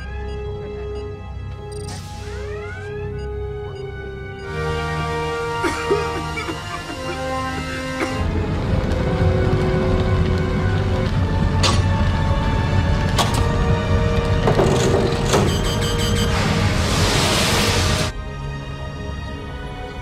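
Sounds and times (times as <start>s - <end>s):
tense film score: 0.0s - 20.0s
low rumble of fire: 7.3s - 19.5s
loud hissing rush: 16.3s - 18.1s.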